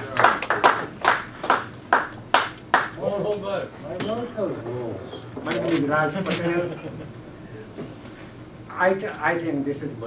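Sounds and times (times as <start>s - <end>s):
hand claps in a room: 0.0s - 3.0s.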